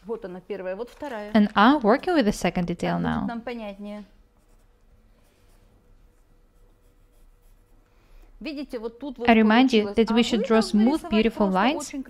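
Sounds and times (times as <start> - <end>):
pencil scratching on paper: 4.4 - 7.8.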